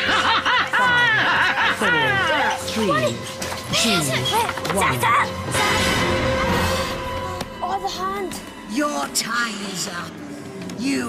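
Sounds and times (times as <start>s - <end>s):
game show background music: 0.0s - 10.3s.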